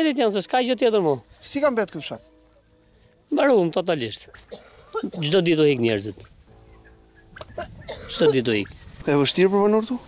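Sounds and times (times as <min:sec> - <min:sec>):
man's voice: 0:08.1 - 0:10.0.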